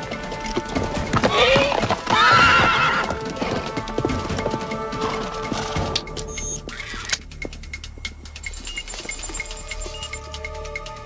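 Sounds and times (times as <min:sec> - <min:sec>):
horse hoofbeats pounding: 0:00.0 - 0:10.8
background music: 0:00.0 - 0:11.0
horse whinnying: 0:01.2 - 0:03.8.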